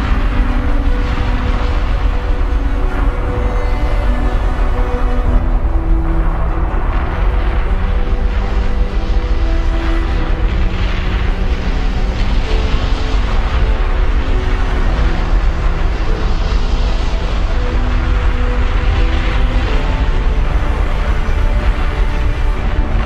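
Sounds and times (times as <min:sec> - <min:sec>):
deep rumble: 0:00.0 - 0:23.0
music of long held notes: 0:00.0 - 0:23.0.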